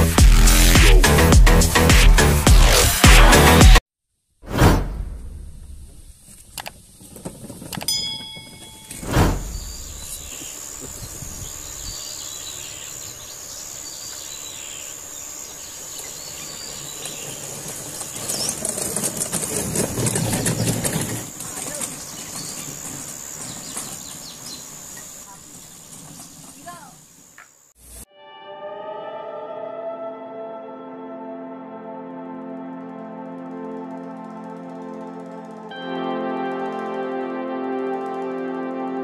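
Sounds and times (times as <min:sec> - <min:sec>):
short chime: 0:07.9 - 0:09.7
bird chirps: 0:08.6 - 0:18.6
high insect drone: 0:09.5 - 0:27.8
rustling: 0:15.8 - 0:28.0.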